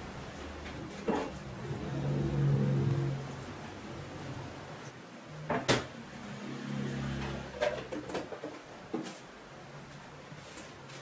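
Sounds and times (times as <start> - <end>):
low steady hum: 0.0 - 8.0.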